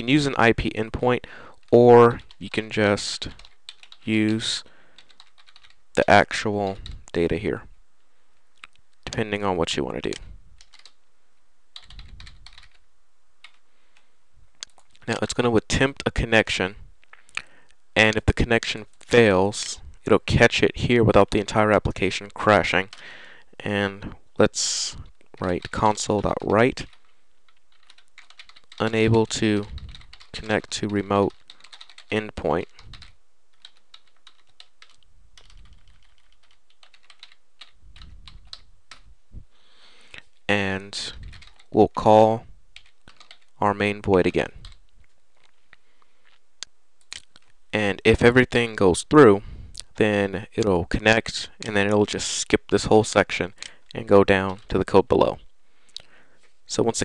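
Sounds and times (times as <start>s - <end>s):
computer keyboard typing: 2.2s - 2.6s, 3.3s - 4.4s, 5.0s - 5.8s, 10.1s - 11.0s, 11.7s - 12.8s, 25.3s - 39.1s, 41.3s - 41.7s, 42.8s - 43.6s, 44.6s - 44.8s.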